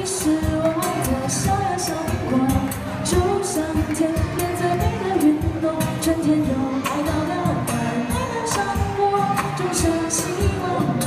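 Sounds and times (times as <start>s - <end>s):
woman singing pop song: 0.0s - 11.0s.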